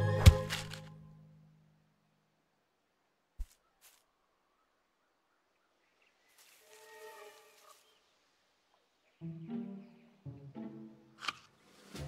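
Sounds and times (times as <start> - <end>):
low bowed strings: 9.2 - 12.0.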